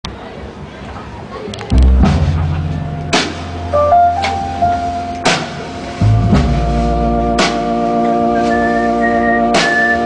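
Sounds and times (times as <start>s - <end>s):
sharp drum hits: 1.7s - 7.7s
low bass note: 1.7s - 8.4s
jazz band playing: 1.7s - 10.0s.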